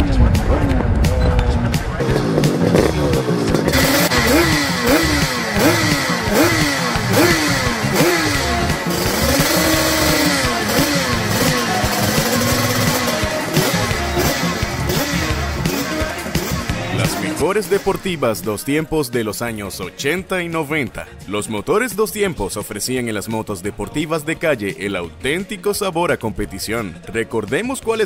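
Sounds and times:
two-stroke motorcycle engine revving: 0.0 - 18.5
music: 0.0 - 28.0.

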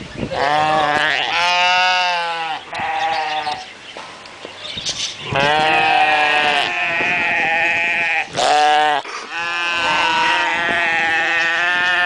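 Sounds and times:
sheep bleating loudly: 0.3 - 3.6, 5.2 - 12.0.

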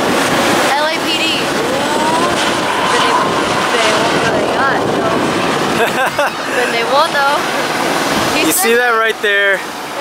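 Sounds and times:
crowd voices: 0.0 - 10.0
helicopter engine and rotor: 0.0 - 10.0.

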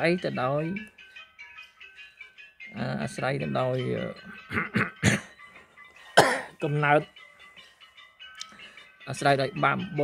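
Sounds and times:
faint background music: 0.0 - 10.0
man speaking: 2.7 - 4.3, 6.6 - 7.1, 9.1 - 10.0.

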